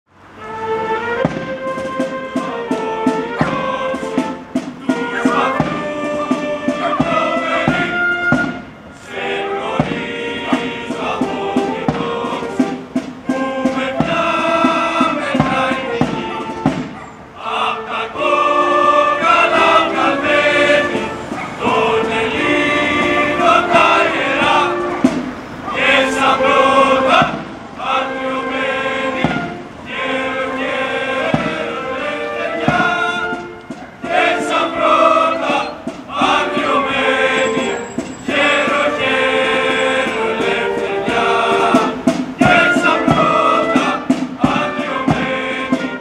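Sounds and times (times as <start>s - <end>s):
wind instrument chords: 0.1s - 46.0s
drum stroke: 1.2s - 17.0s, 19.5s - 27.6s, 31.2s - 31.8s, 32.6s - 46.0s
group of voices singing: 1.3s - 46.0s.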